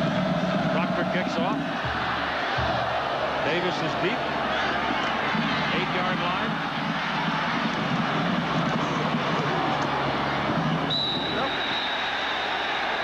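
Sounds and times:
stadium crowd cheering: 0.0 - 13.0
referee's whistle: 10.9 - 13.0.

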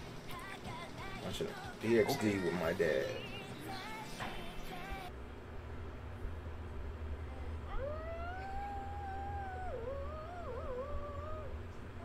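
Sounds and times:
cat yowling: 7.7 - 11.6.

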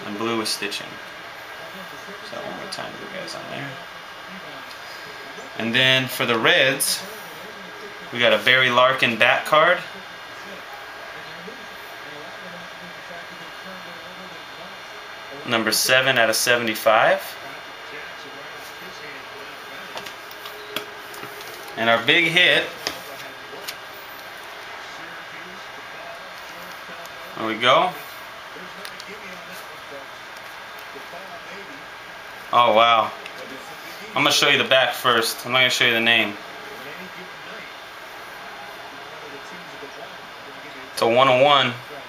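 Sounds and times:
faint indistinct murmurs: 0.0 - 41.0
faint steady hum: 0.0 - 42.0
room hiss: 0.0 - 42.0.

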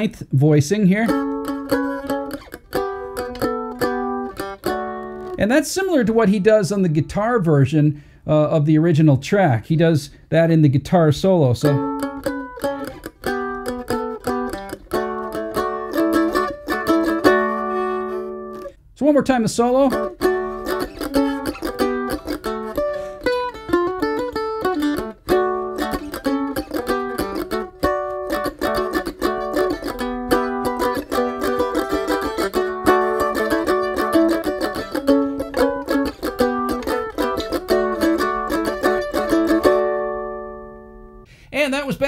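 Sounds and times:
man speaking: 0.0 - 1.2, 5.4 - 11.9, 19.0 - 20.1, 41.5 - 42.0
mandolin solo played with a pick: 0.0 - 7.6, 11.4 - 18.8, 19.6 - 41.2.

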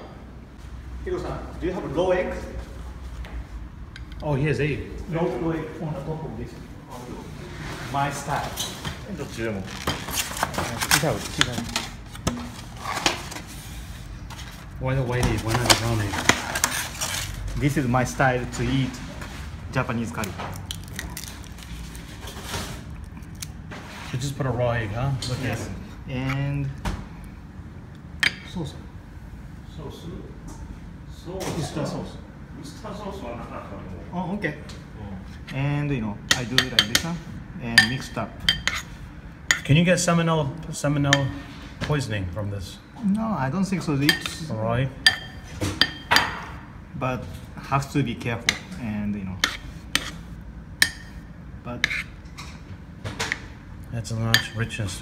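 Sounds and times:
spoon clinking on ceramic bowl: 37.8 - 38.8, 45.0 - 46.4
spoon scraping bowl: 49.4 - 51.2, 51.8 - 52.2.

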